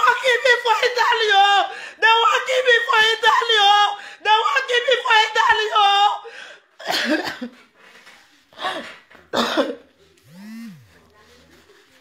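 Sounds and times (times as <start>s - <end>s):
person coughing: 6.8s - 7.6s, 9.4s - 9.9s.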